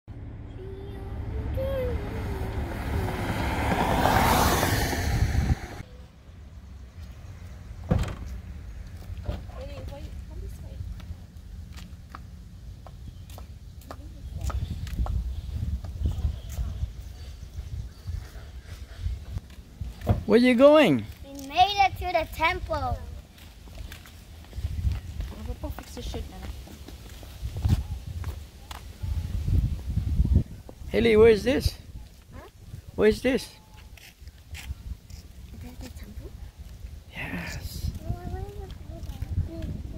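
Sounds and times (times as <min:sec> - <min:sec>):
vehicle approaching on road: 0:00.1 - 0:14.6
child's voice: 0:00.4 - 0:03.5, 0:21.1 - 0:23.2, 0:32.3 - 0:32.6, 0:37.6 - 0:39.9
wind buffeting microphone: 0:00.6 - 0:05.8, 0:14.0 - 0:20.2, 0:23.8 - 0:33.0, 0:34.2 - 0:39.9
footsteps on asphalt: 0:10.8 - 0:16.6, 0:22.4 - 0:29.0.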